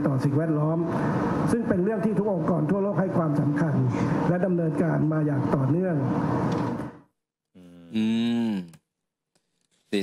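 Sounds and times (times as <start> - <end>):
person saying umm: 7.6 - 8.8
person speaking: 7.6 - 8.8.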